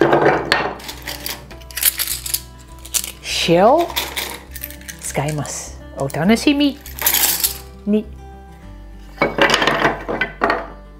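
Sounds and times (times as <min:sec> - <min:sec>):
small hard pieces clicking: 0:00.8 - 0:03.2.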